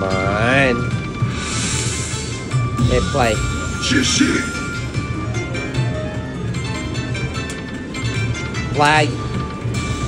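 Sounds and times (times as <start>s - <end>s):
slot machine music: 0.0s - 10.0s.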